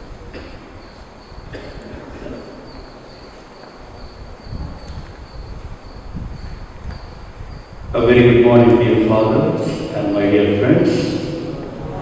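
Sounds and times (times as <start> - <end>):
cricket chirping: 0.0 - 7.9
low room rumble: 3.8 - 12.0.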